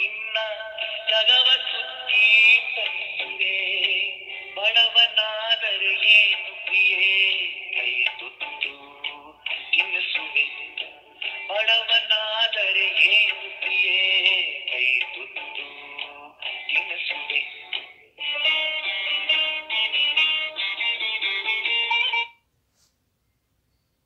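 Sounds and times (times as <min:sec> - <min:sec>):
musical accompaniment: 0:00.0 - 0:22.4.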